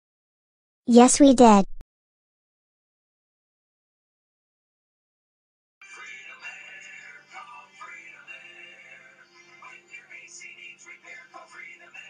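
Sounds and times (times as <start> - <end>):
music with singing: 5.8 - 12.0.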